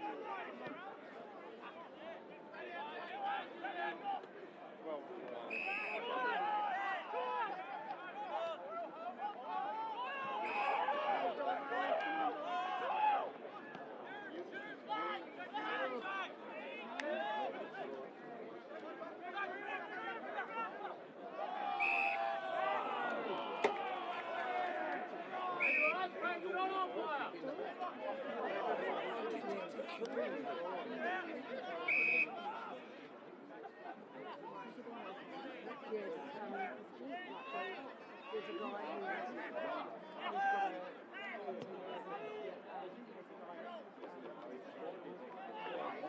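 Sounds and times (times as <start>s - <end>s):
people talking and calling out: 0.0s - 46.0s
shrill whistle blasts: 5.5s - 6.0s, 21.8s - 22.2s, 25.6s - 26.0s, 31.9s - 32.3s.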